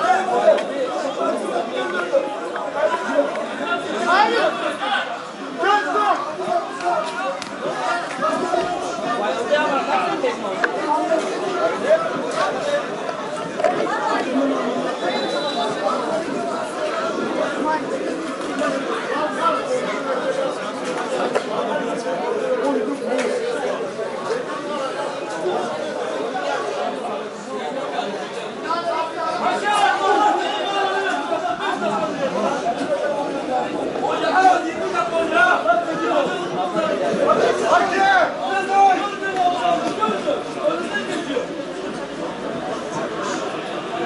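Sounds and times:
hubbub of chatter: 0.0 - 44.0.

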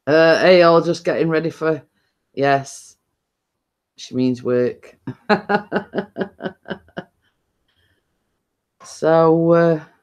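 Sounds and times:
woman laughing: 5.1 - 7.0.

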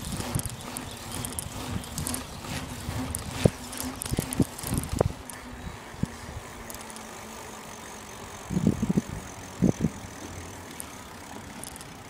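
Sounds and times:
steady outdoor hum: 0.0 - 12.0.

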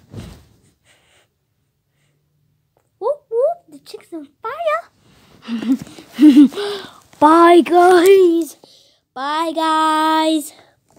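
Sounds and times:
person breathing sharply: 6.4 - 7.0.

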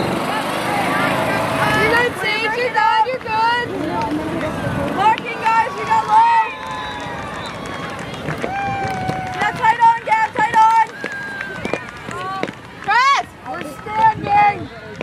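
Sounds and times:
people shouting: 5.0 - 14.1.

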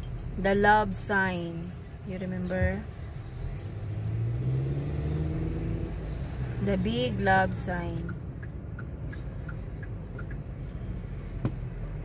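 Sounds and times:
car engine from inside cabin: 0.0 - 12.0
road noise: 0.0 - 12.0.

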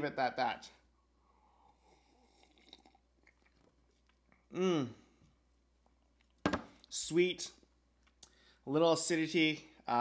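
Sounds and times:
sipping coffee: 1.5 - 4.4.

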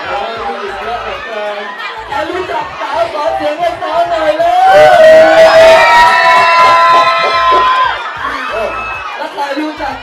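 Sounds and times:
hip-hop music over sound system: 2.0 - 10.0
low beat: 4.5 - 9.0.

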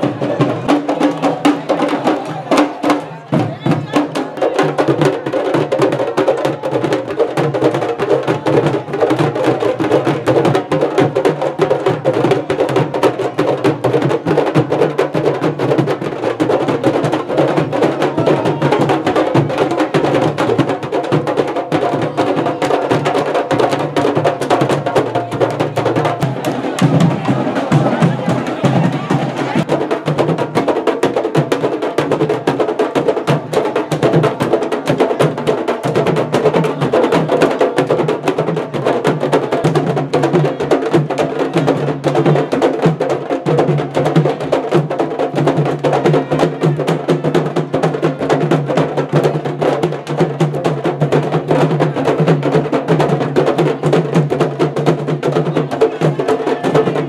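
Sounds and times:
drum troupe playing fast beat: 0.0 - 57.0.

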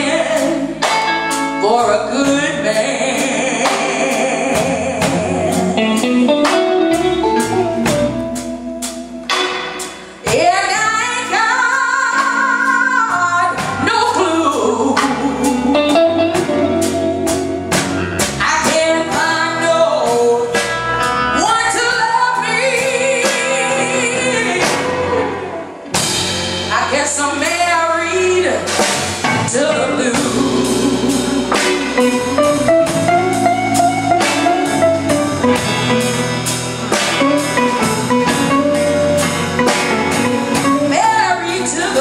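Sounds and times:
woman singing: 0.0 - 7.1, 10.2 - 17.6, 18.4 - 25.6, 26.7 - 36.2, 39.7 - 42.0
drums: 0.0 - 42.0
electric guitar: 0.0 - 42.0.

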